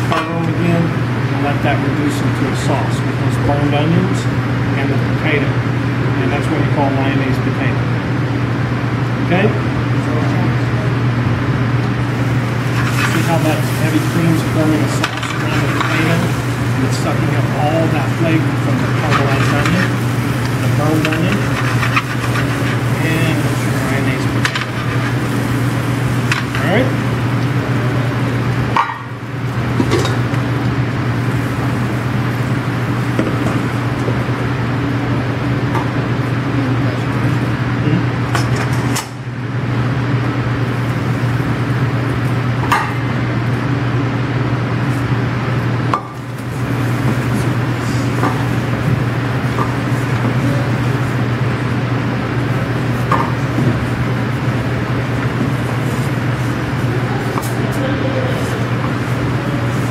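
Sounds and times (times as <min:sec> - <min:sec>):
kitchen equipment humming: 0:00.0 - 0:59.9.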